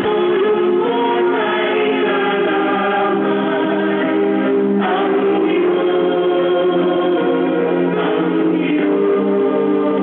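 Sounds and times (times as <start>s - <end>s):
group singing a gospel hymn: 0.0s - 10.0s.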